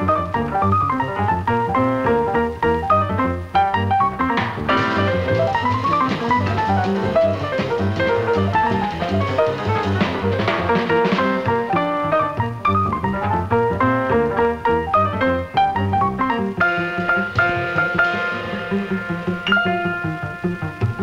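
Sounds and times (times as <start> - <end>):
piano runs: 0.0 - 21.0
plucked upright bass: 0.0 - 21.0
drum kit with cymbals: 4.4 - 12.0.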